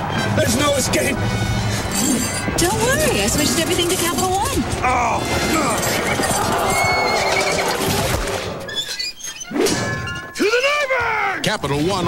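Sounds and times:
music: 0:00.0 - 0:08.7.

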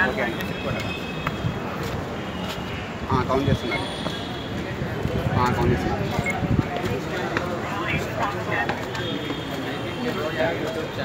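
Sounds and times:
distant city traffic: 0:00.0 - 0:11.0
footsteps clicking: 0:06.4 - 0:11.0.

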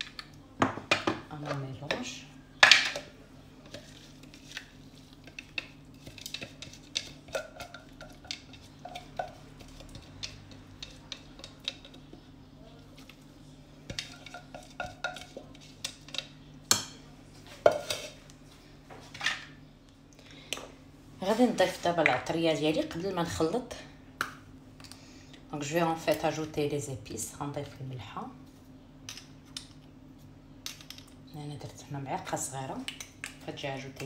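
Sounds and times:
faint steady hum: 0:00.0 - 0:34.0.

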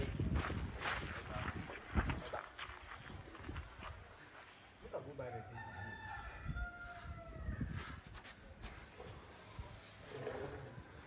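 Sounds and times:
rooster crowing: 0:05.2 - 0:07.7.

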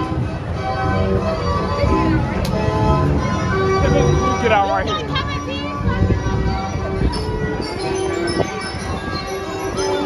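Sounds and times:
carousel music: 0:00.0 - 0:10.0
low rumble of fairground noise: 0:00.0 - 0:10.0.

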